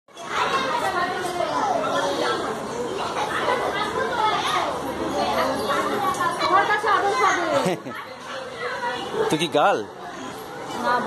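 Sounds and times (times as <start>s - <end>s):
people chattering: 0.1s - 11.0s.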